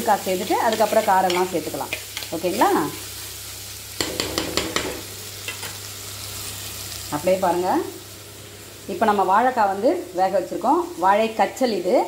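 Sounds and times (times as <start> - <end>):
food sizzling in oil: 0.0 - 12.0.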